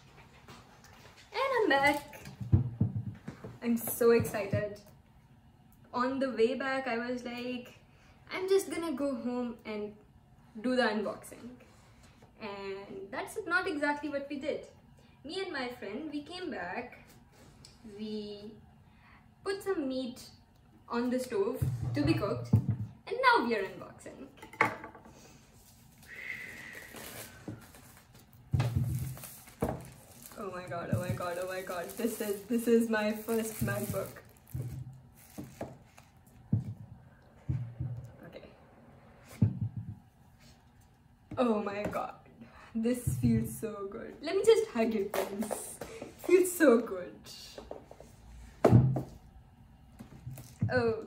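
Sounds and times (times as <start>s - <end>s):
plastic wrap crinkling: 26.6s - 36.4s.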